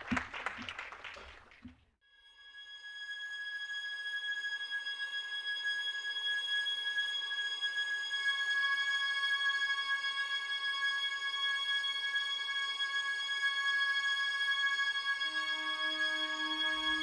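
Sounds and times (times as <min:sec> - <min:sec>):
audience applause: 0:00.0 - 0:01.8
ambient drone music: 0:15.3 - 0:17.0.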